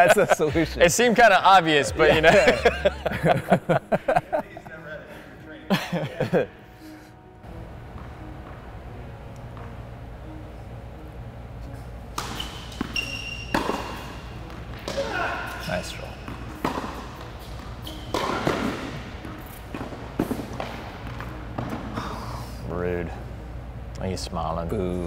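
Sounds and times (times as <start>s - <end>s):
tennis racket hitting ball: 12.1s - 22.0s
ball bouncing on court: 12.2s - 21.8s.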